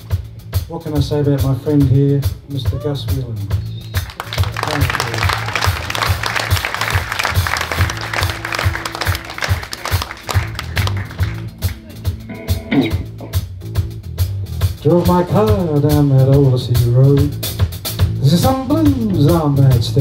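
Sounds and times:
blues band with bass and drums: 0:00.0 - 0:20.0
audience applauding: 0:03.8 - 0:12.1.

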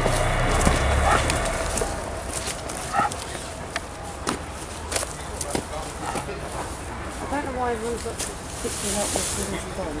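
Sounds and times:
low rumble: 0:00.0 - 0:03.6
footsteps on dirt path: 0:00.0 - 0:09.8.

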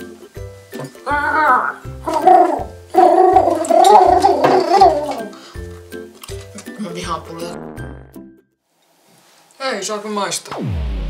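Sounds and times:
background music with bass line: 0:07.0 - 0:08.4, 0:10.6 - 0:11.0.

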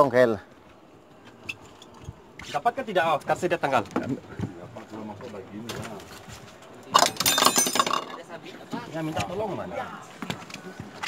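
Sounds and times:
men talking: 0:00.0 - 0:00.6, 0:02.4 - 0:10.9.

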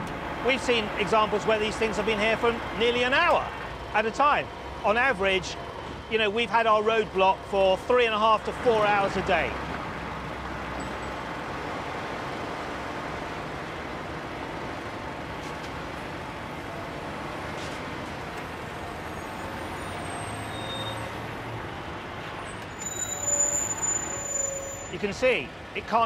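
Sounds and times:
diesel engine running: 0:00.0 - 0:20.5
street noise: 0:00.0 - 0:26.0.

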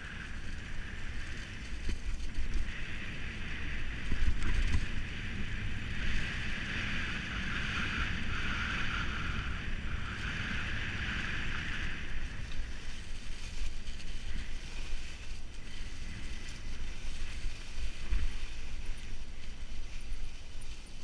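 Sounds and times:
bike tyres hissing through leaves: 0:00.0 - 0:21.0
wind rumble on microphone: 0:00.0 - 0:21.0.

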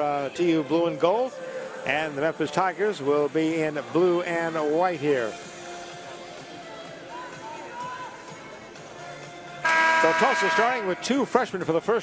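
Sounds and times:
faint music: 0:00.0 - 0:12.0
loud steady pitched tone: 0:09.6 - 0:11.1.

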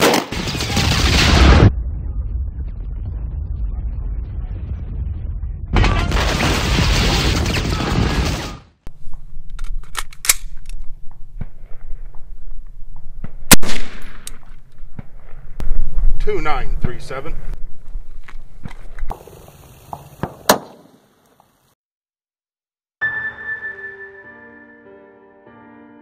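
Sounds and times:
dense intro sound effects: 0:00.9 - 0:05.8
rifle shot with echo: 0:13.5 - 0:14.2.

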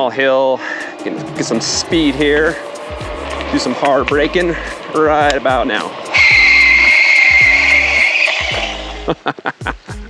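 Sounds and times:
tyre squealing under braking: 0:05.8 - 0:09.1.

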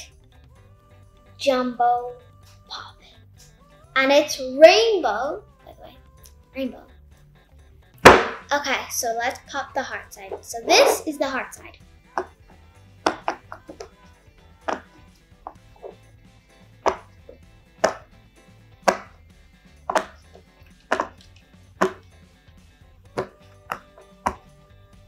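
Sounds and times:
fidget toy bubbles popping: 0:20.9 - 0:21.2.

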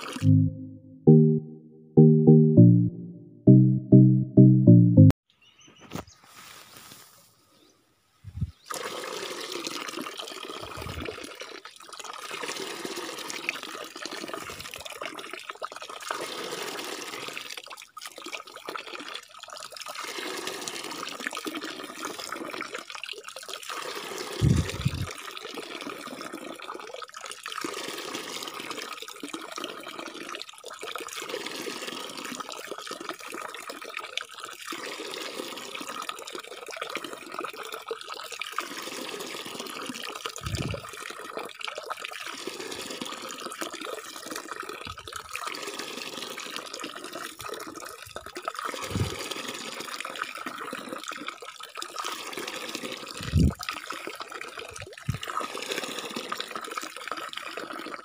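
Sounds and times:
water trickling into a tub: 0:08.5 - 0:58.0.

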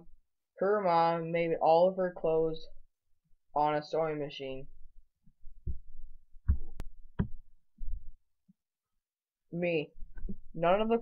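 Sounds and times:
soft low thuds: 0:05.3 - 0:08.2.

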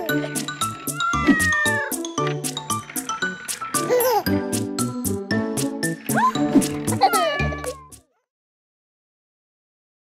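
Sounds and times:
cartoon cat meowing: 0:00.8 - 0:02.0, 0:07.0 - 0:08.3.

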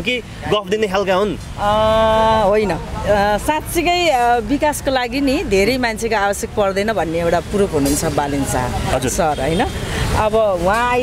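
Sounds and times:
woman talking: 0:01.6 - 0:11.0.

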